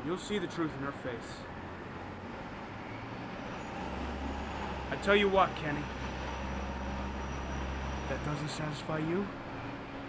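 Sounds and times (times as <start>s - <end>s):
city traffic hum: 0.0s - 10.0s.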